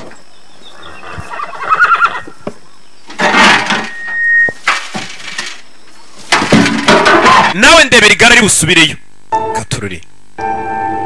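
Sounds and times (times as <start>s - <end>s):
horse whinnying: 0.8s - 2.4s
noisy clatter: 3.1s - 7.9s.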